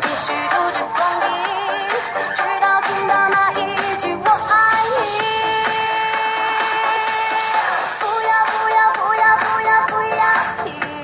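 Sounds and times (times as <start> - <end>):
pop song with long held note: 0.0 - 11.0.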